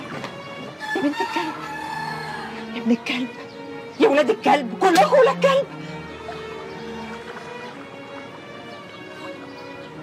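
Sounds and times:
background music: 0:00.0 - 0:10.0
chickens clucking: 0:00.0 - 0:10.0.

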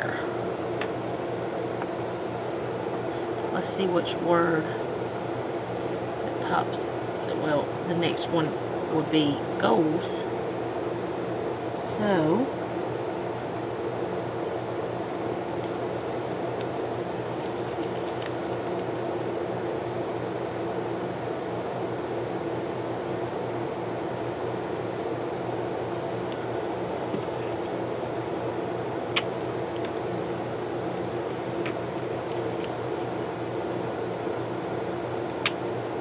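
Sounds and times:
machine hum: 0:00.0 - 0:36.0
paper rustling: 0:17.3 - 0:19.0, 0:31.9 - 0:32.7.

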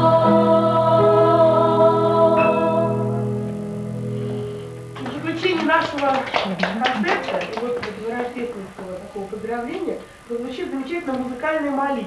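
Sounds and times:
short claps: 0:05.0 - 0:08.9
woman speaking: 0:05.0 - 0:12.0.

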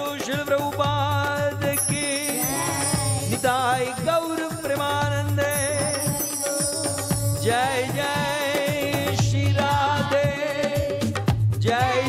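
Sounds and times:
drum strokes: 0:01.0 - 0:12.0
held drone tone: 0:01.8 - 0:08.2.

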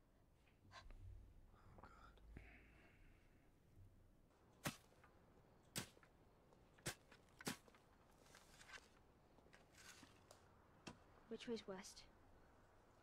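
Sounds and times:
shovel digging into ground: 0:04.6 - 0:05.0, 0:06.8 - 0:08.9.

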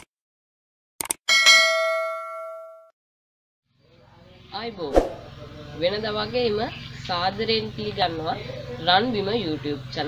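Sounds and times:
bell ding: 0:01.3 - 0:02.9.

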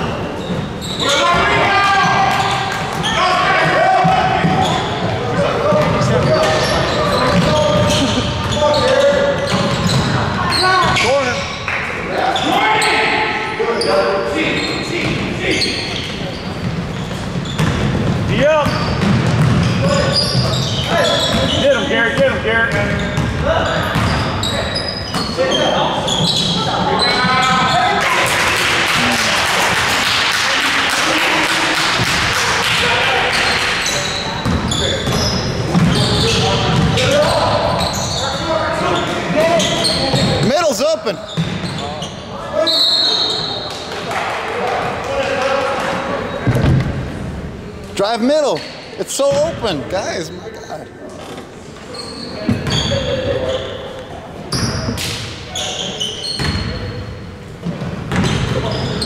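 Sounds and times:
basketball bouncing on wooden floor: 0:17.4 - 0:19.8.

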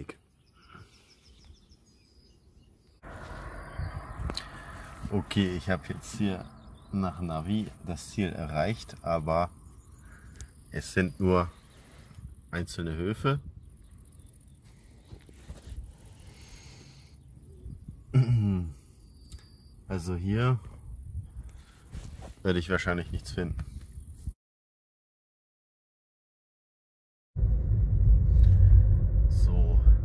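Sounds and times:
faint bird chirps: 0:00.0 - 0:15.3, 0:16.5 - 0:20.2
car road and engine noise: 0:03.0 - 0:10.7.

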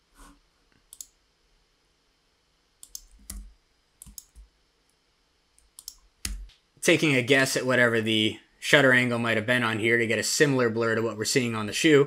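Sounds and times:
mouse and keyboard clicks: 0:02.8 - 0:04.5, 0:05.6 - 0:06.6.

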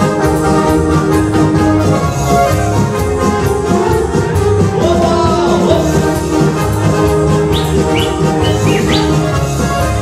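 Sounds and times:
live folk-pop band playing: 0:00.0 - 0:10.0.

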